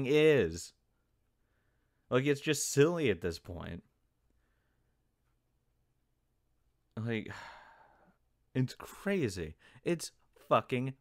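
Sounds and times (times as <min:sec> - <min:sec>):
man speaking: 0:00.0 - 0:00.8, 0:02.1 - 0:04.0, 0:06.9 - 0:07.6, 0:08.5 - 0:11.0
man sighing: 0:07.2 - 0:08.2.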